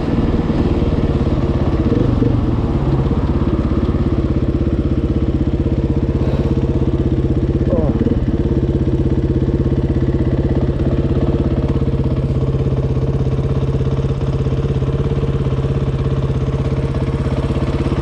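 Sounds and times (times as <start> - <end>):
dirt bike engine idling: 0.0 - 18.0.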